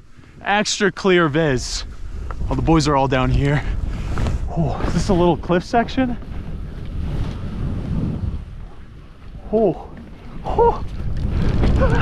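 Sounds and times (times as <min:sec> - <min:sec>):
skis rushing through snow: 0:00.0 - 0:12.0
wind rumbling on microphone: 0:00.0 - 0:12.0.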